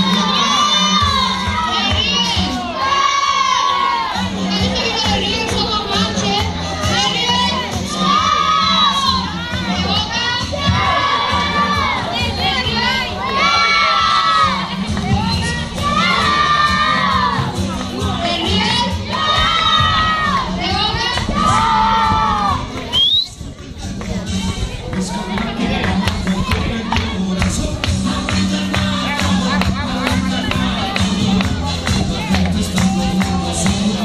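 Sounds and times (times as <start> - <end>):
children shouting and cheering: 0.0 - 23.0, 23.7 - 34.0.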